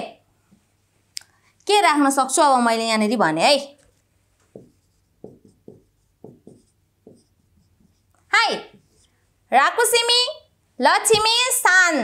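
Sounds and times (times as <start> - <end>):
marker squeaking on whiteboard: 4.5 - 9.1.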